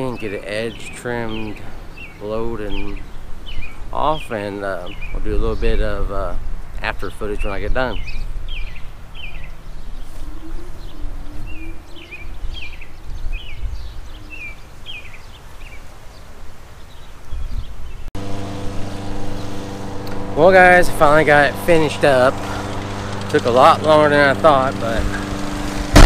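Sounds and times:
bird chirping: 0:00.0 - 0:18.1
engine idling: 0:18.2 - 0:26.0.

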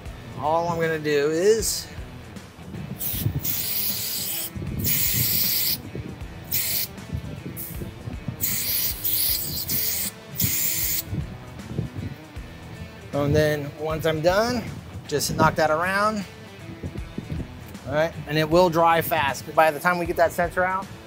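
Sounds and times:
aerosol spray hissing: 0:03.0 - 0:05.8, 0:06.4 - 0:11.1.

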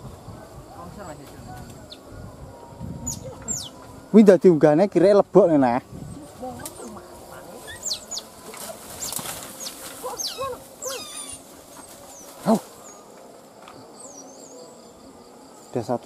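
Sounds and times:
otter pup squeals: 0:10.0 - 0:11.4
otter pup cry: 0:10.0 - 0:11.5.

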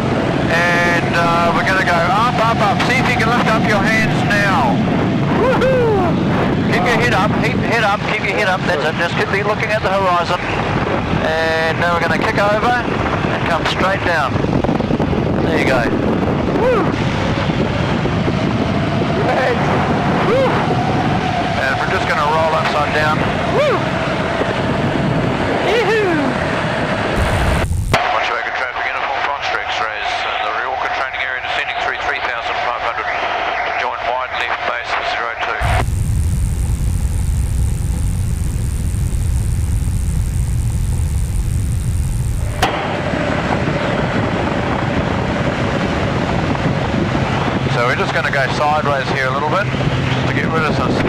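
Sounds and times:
airplane engine and propeller: 0:00.0 - 0:29.3, 0:35.5 - 0:51.0
rushing air: 0:26.3 - 0:28.0, 0:35.6 - 0:47.7.

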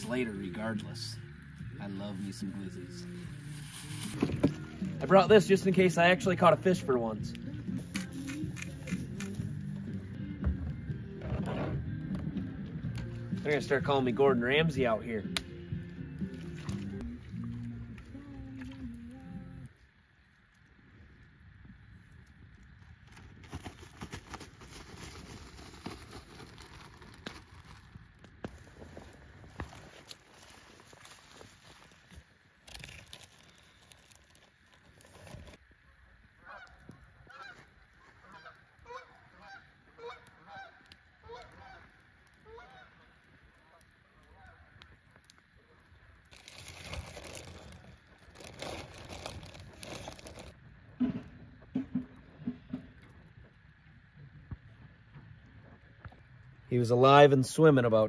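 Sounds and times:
broad rustling noise: 0:23.4 - 0:35.6, 0:46.3 - 0:50.6
geese honking: 0:36.4 - 0:44.7.

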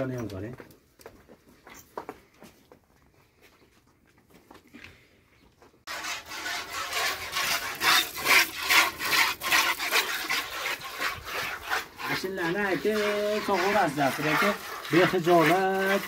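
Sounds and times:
milk squirting into metal bucket: 0:05.9 - 0:16.0.

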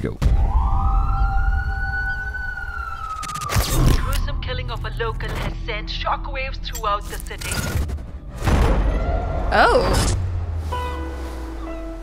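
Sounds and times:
wailing tone: 0:00.4 - 0:04.0
deep steady rumble: 0:08.0 - 0:12.0.

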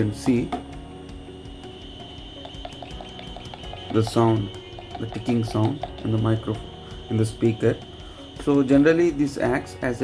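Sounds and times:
soft background music: 0:00.0 - 0:10.0
faint ticking from small speaker: 0:01.1 - 0:09.6.

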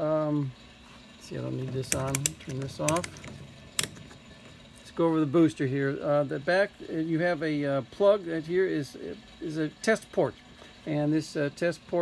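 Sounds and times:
multimeter switch click: 0:01.9 - 0:03.2.

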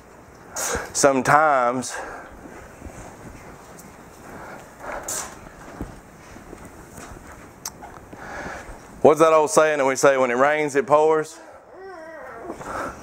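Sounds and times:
faint footsteps: 0:01.9 - 0:09.0
soft rustles and clicks: 0:02.2 - 0:09.0.

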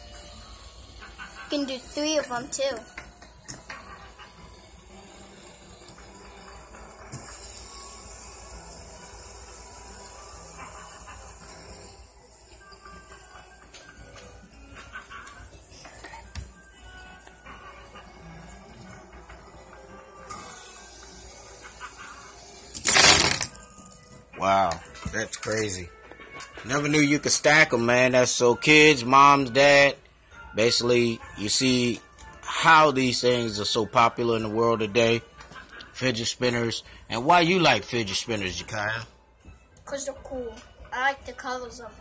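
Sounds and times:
fidget spinners whirring: 0:00.0 - 0:25.8.

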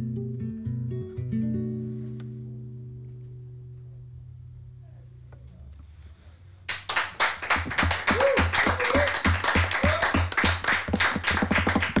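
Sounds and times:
group clapping: 0:06.7 - 0:12.0
short whoops: 0:08.0 - 0:10.3.

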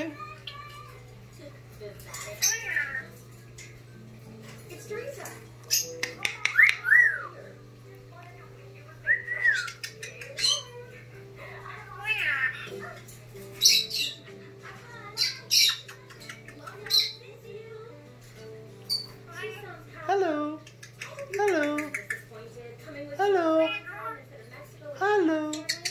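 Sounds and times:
parrot squawks and whistles: 0:05.7 - 0:07.4.

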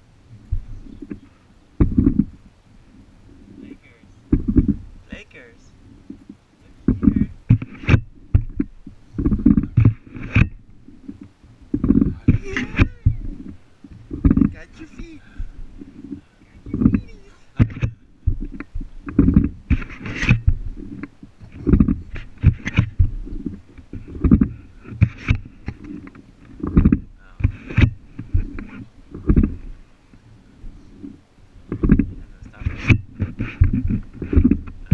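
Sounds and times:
wind buffeting microphone: 0:00.0 - 0:34.9
short knocks: 0:00.5 - 0:02.4, 0:04.3 - 0:04.9, 0:06.0 - 0:34.9.

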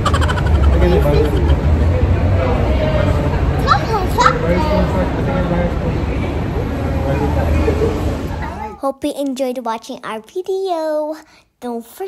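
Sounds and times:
steady low rumble: 0:00.0 - 0:04.2
background chatter: 0:00.0 - 0:08.9
child's voice: 0:03.6 - 0:04.9, 0:08.4 - 0:12.0.

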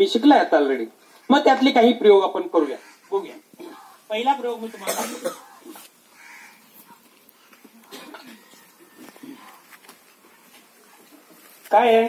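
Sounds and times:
person coughing: 0:04.8 - 0:05.6, 0:07.9 - 0:08.5.

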